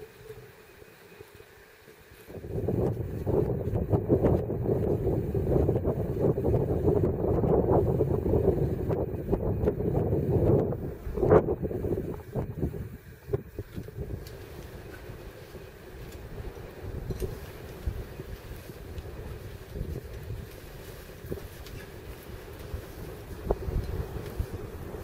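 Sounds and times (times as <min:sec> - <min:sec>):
wind buffeting microphone: 0:02.3 - 0:25.0.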